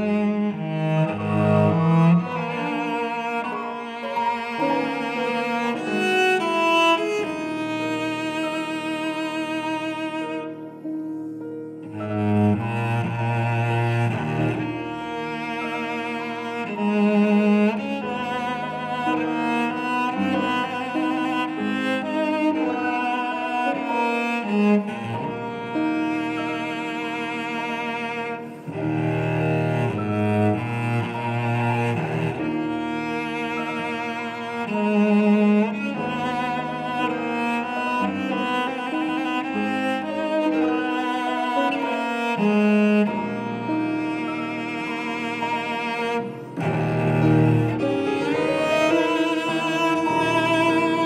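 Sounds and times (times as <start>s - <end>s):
bowed string chamber music: 0.0s - 51.0s.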